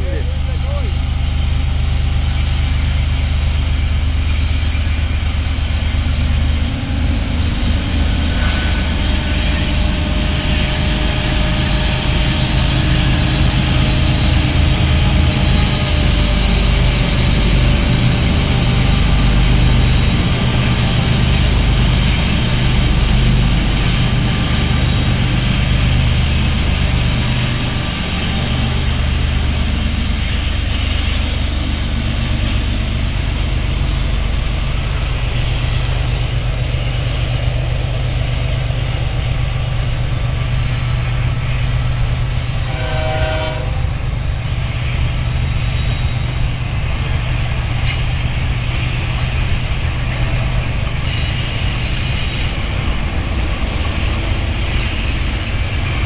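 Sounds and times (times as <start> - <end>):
diesel locomotives droning: 0.0 - 56.0.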